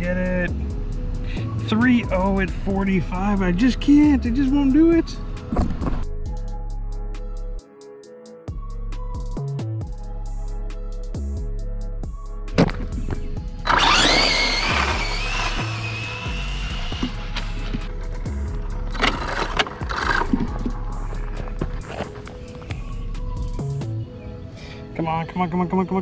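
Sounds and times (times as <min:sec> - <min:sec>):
background music with steady beat: 0:00.0 - 0:26.0
electric motor whining: 0:13.5 - 0:22.3.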